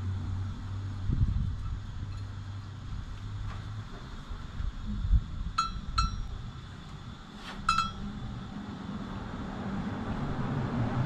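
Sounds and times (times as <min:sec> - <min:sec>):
short metallic clinks: 0:07.7 - 0:08.1.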